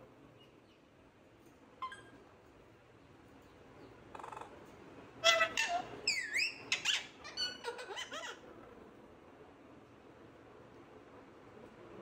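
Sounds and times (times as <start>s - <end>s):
parakeet squawking and chirping: 1.8s - 2.2s, 5.2s - 8.5s.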